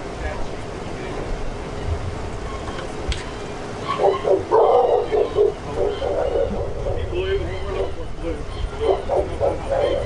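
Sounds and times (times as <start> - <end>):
dog barking: 3.9 - 6.9, 8.8 - 10.0.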